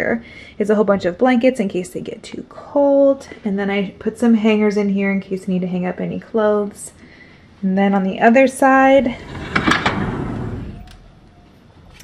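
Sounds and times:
sliding door rolling on track: 0:09.0 - 0:11.0.

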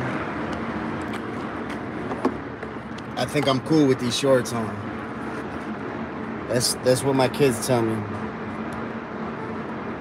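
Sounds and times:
city traffic hum: 0:00.0 - 0:10.0.

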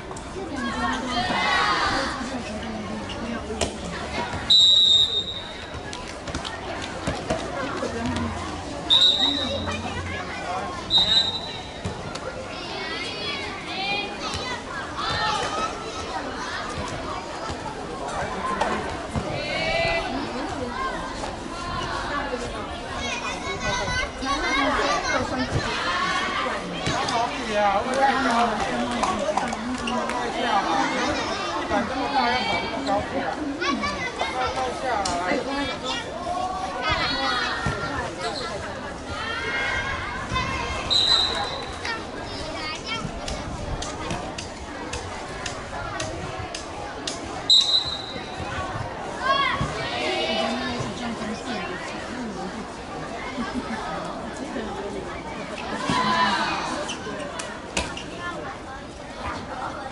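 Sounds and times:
sports whistle blast: 0:04.5 - 0:05.5, 0:08.9 - 0:09.6, 0:10.9 - 0:11.7, 0:47.5 - 0:48.3
children shouting: 0:08.9 - 0:17.7, 0:47.5 - 0:50.9, 0:55.6 - 0:57.0.

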